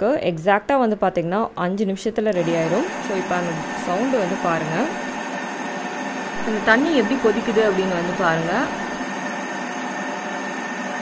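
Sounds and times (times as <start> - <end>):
electric kettle heating water: 2.2 - 11.0.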